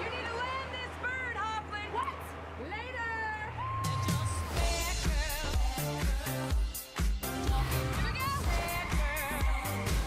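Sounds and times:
drum beat with heavy kick drums: 4.1 - 10.0.

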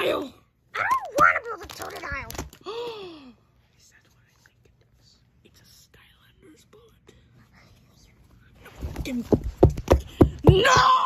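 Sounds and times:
faint whispered voice: 3.2 - 9.2.

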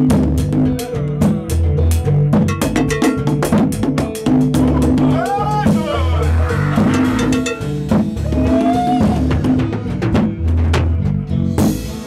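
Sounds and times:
bass guitar notes: 0.0 - 12.0
drum kit playing fast strokes: 0.0 - 12.0.

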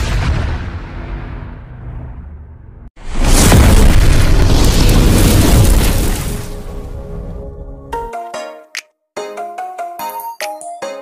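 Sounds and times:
rumbling whoosh: 0.0 - 6.3
loud explosion-like boom: 0.0 - 7.4.

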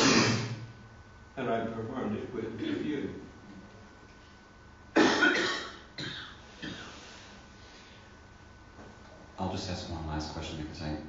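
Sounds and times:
man coughing: 0.0 - 0.6, 2.6 - 3.0, 5.0 - 7.0.

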